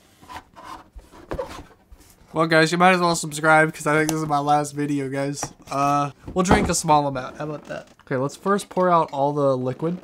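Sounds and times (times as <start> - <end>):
cardboard rubbing and scraping: 0.1 - 2.2.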